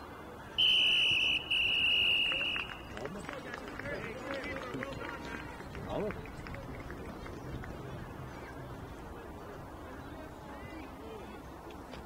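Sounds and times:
referee's whistle blasts: 0:00.6 - 0:02.8.

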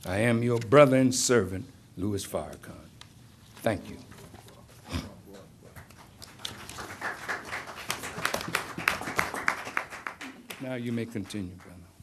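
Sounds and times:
audience clapping: 0:05.3 - 0:11.8.

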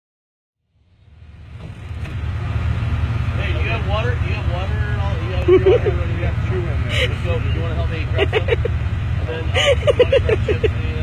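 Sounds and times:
vehicle engine idling: 0:00.6 - 0:11.0
people's voices: 0:03.4 - 0:11.0.

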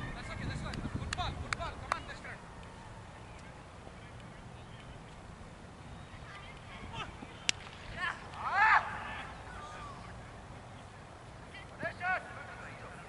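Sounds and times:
players shouting: 0:06.4 - 0:10.5.

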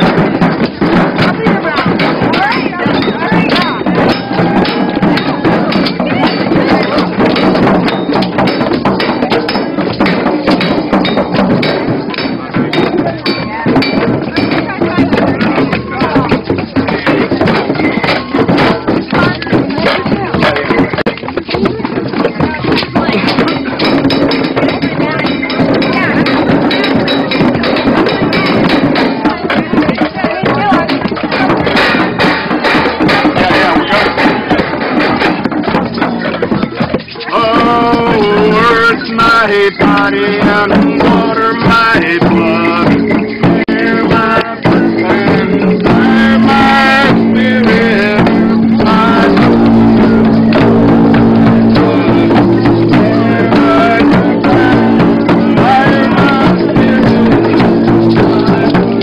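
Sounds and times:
crowd voices: 0:00.0 - 0:59.0
music: 0:00.0 - 0:59.0.

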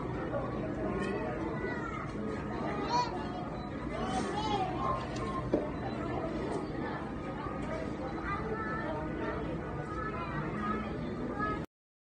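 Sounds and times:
indistinct voices and chatter: 0:00.0 - 0:11.7.

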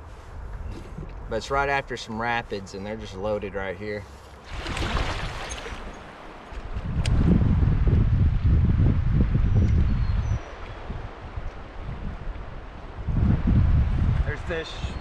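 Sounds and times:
wind buffeting microphone: 0:04.4 - 0:15.0.

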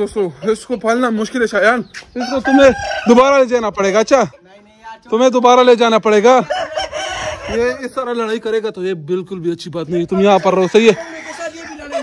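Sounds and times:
rooster crowing: 0:02.2 - 0:03.3, 0:06.4 - 0:07.8.

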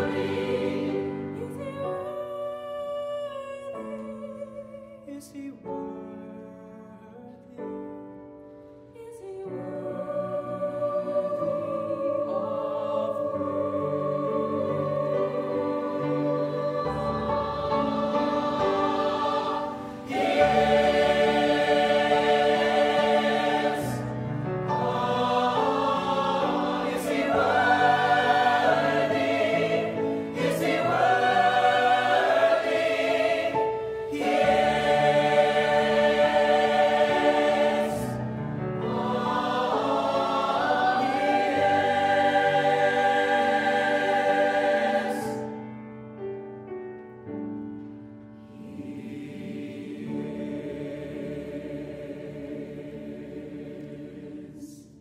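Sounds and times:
choir singing: 0:00.0 - 0:02.3, 0:09.2 - 0:45.7, 0:48.3 - 0:55.0.

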